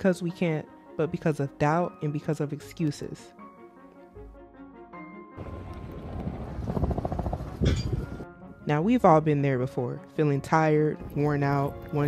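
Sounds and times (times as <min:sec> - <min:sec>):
vehicle passing close by: 0:05.4 - 0:08.2
wind rumbling on microphone: 0:05.4 - 0:08.3.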